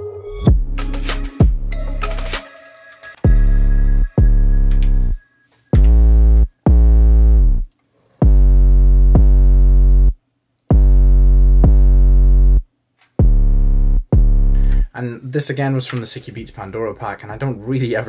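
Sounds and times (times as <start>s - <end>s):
deep bass notes: 0.5s - 2.0s, 3.3s - 5.2s, 5.8s - 14.9s.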